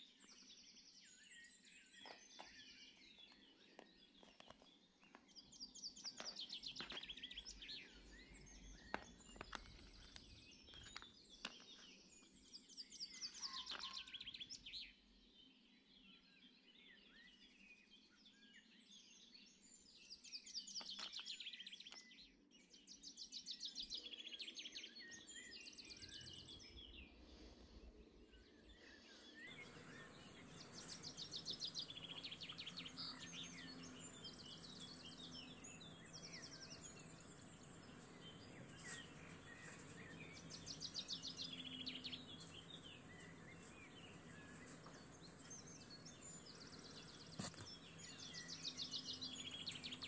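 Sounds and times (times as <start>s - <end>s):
faint steady hiss: 29.5s - 50.0s
songbird trilling: 29.5s - 50.0s.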